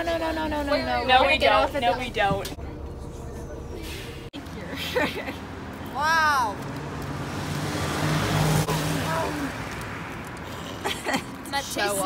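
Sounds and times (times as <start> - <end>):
street noise: 0.0 - 12.0
vehicle engine humming: 0.0 - 12.0.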